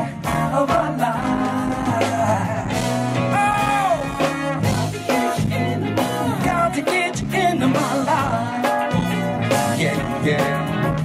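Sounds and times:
congas: 0.0 - 11.0
distorted bass: 0.0 - 11.0
drums: 0.0 - 11.0
horns: 0.0 - 11.0
keyboard: 0.0 - 11.0
person singing: 0.0 - 11.0.

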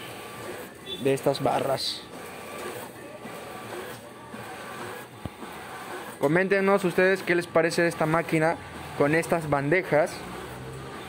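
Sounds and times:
printer paper feed whirring: 0.0 - 11.0.

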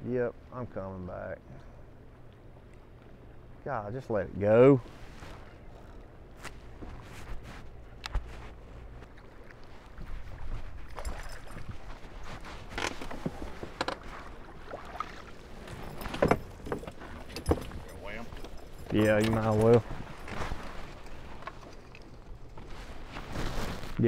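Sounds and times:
footsteps on boat deck: 4.8 - 14.8.

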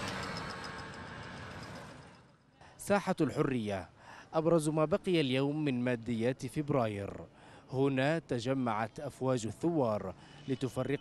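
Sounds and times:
motorcycles passing by: 0.0 - 2.4.

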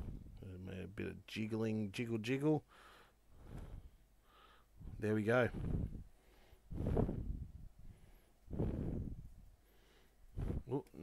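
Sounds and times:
man breathing out: 2.7 - 10.6.

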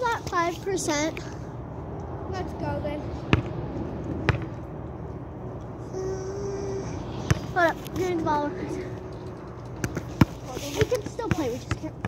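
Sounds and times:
volleyball bouncing on hard ground: 3.3 - 3.6, 4.2 - 4.6, 7.3 - 8.1, 9.6 - 12.0.

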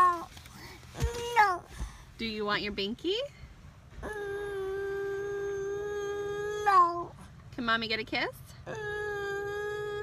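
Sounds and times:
toddler whining hum: 4.0 - 7.3, 8.7 - 10.0.

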